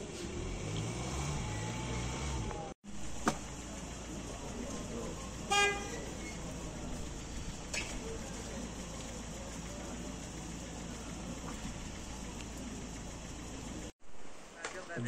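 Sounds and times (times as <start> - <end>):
slow traffic street noise: 0.0 - 15.0
car horn toot: 5.4 - 6.4.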